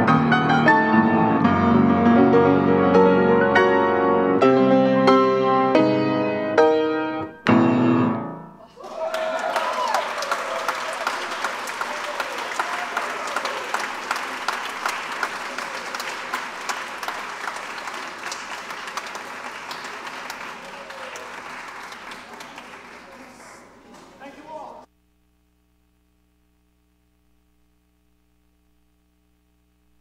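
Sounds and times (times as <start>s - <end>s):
crowd clapping: 8.7s - 24.9s.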